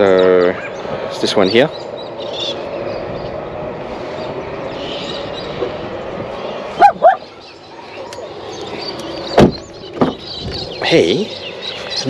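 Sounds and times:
steady background noise: 0:00.0 - 0:12.0
dog barking: 0:06.8 - 0:07.2.

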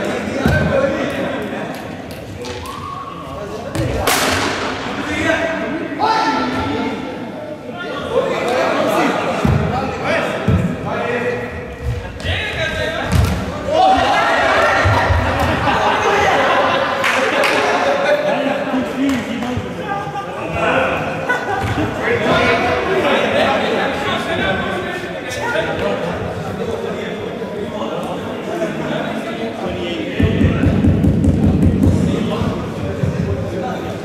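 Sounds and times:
players calling and talking: 0:00.0 - 0:34.0.

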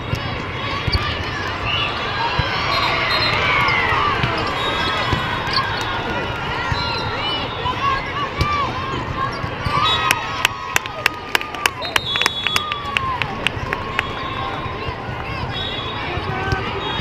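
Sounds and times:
hubbub of many voices: 0:00.0 - 0:17.0
hand claps: 0:10.1 - 0:14.1.

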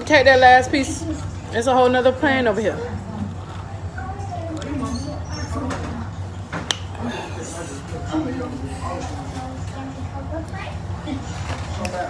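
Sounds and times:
faint voices talking: 0:00.0 - 0:12.0.

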